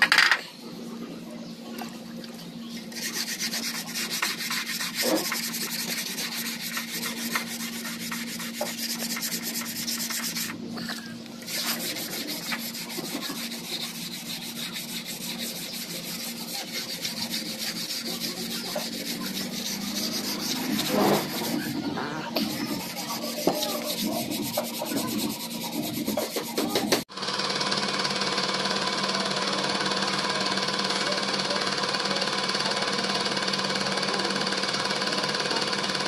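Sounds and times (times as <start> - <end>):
sandpaper rubbing on painted metal: 2.7 - 27.1.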